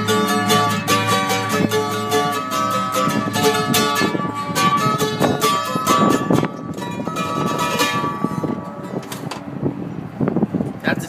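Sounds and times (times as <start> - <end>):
mandolin strummed: 0.0 - 9.6.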